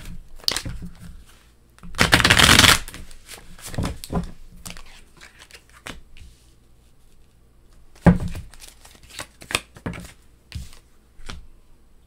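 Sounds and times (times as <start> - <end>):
cards being shuffled: 2.0 - 6.3, 8.0 - 11.4.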